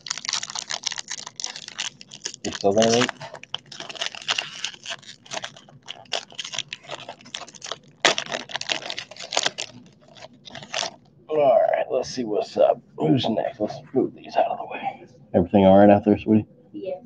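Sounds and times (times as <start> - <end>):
plastic wrapper crinkling and tearing: 0.0 - 11.1.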